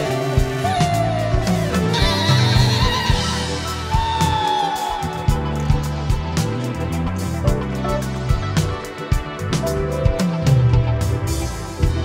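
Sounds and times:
bass: 0.0s - 12.0s.

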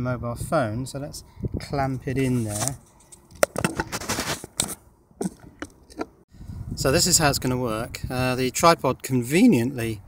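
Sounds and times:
scraping rustle: 2.2s - 6.2s.

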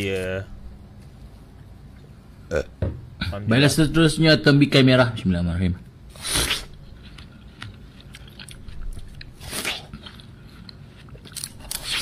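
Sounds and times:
man burping: 2.5s - 2.8s.

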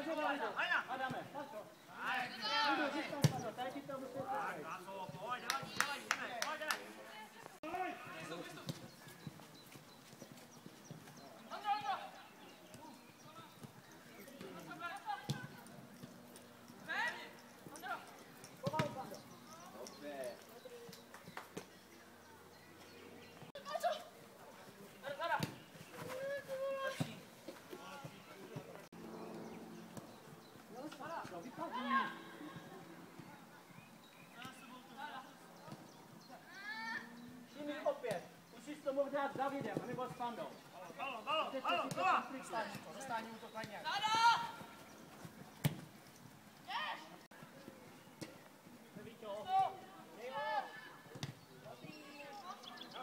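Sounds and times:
distant shouting of footballers: 0.0s - 9.3s, 23.5s - 30.2s, 30.8s - 33.8s, 34.4s - 44.8s
young footballers shouting: 2.0s - 3.6s, 26.0s - 27.2s, 36.4s - 37.2s, 41.1s - 44.7s.

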